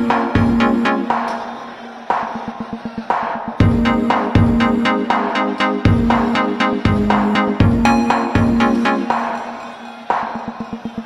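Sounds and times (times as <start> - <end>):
synth chord hits: 3.6 - 9.4.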